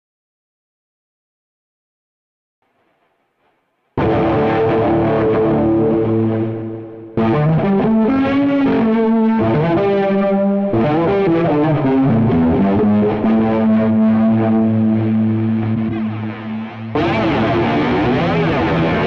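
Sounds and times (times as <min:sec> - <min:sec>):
distorted electric guitar: 0:02.6 - 0:19.0.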